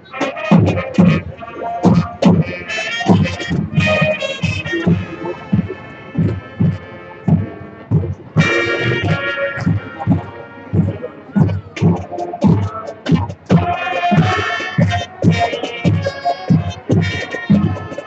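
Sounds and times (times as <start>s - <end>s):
marching band playing: 0.0s - 18.0s
percussion hits: 0.1s - 18.0s.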